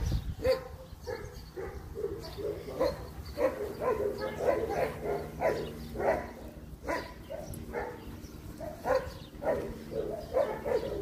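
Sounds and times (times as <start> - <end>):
dog barking: 0.4 - 8.0, 8.6 - 11.0.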